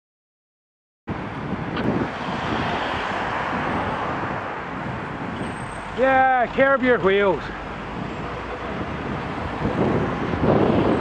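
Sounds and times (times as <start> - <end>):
road traffic rushing: 1.1 - 11.0.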